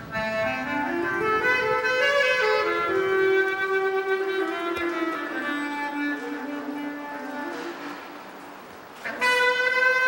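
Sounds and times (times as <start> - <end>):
bass clarinet melody: 0.0 - 8.0, 9.0 - 10.0.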